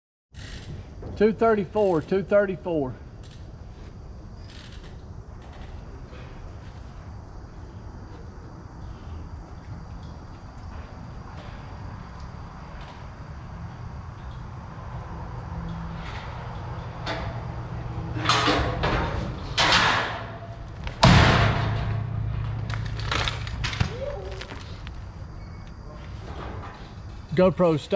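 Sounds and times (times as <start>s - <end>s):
metal gate slamming: 15.9s - 24.4s.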